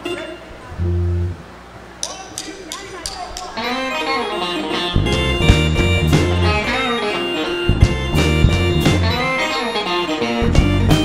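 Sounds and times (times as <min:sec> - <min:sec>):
guitar picking single notes: 0:00.0 - 0:01.6, 0:03.6 - 0:11.0
low bass note: 0:00.7 - 0:01.5
rock band: 0:03.7 - 0:11.0.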